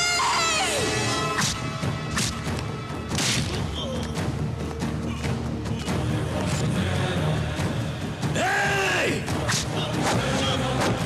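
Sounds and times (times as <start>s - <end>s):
background music score: 0.0s - 11.0s.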